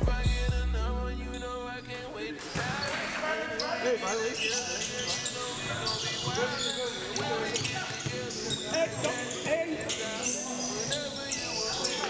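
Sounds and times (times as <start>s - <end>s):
hip hop backing track: 0.0s - 4.1s
basketball game in a gym: 1.3s - 12.0s.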